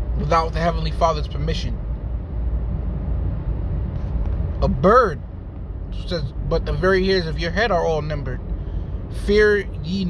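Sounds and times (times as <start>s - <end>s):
steady low rumble: 0.0s - 10.0s
speech: 0.2s - 1.8s, 6.0s - 8.4s, 9.2s - 10.0s.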